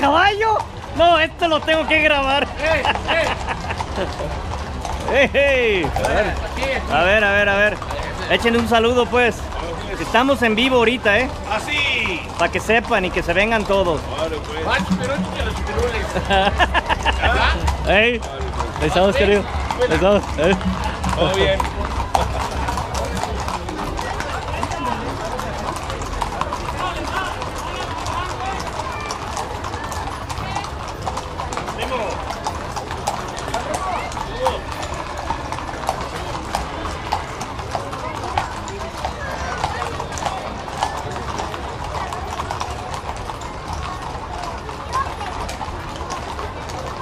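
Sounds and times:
crowd chattering: 0.0s - 47.0s
hooves clip-clopping on pavement: 0.0s - 47.0s.

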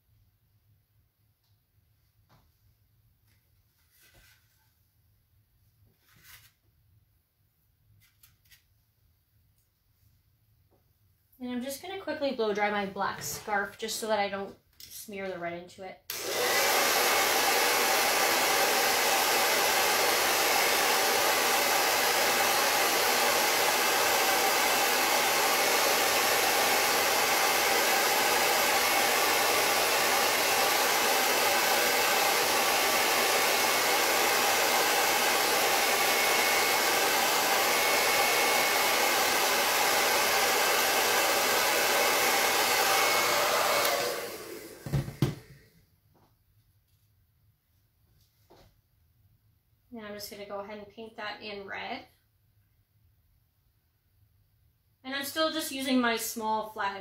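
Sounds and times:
hair dryer running: 16.1s - 45.7s.

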